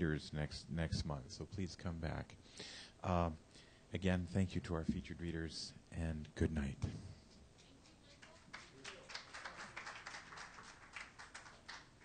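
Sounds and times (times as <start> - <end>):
sparse applause: 8.2 - 12.0.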